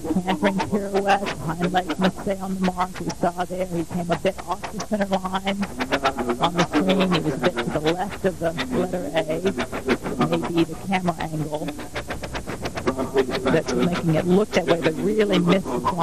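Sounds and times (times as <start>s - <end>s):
person talking: 0.0s - 12.0s, 12.8s - 16.0s.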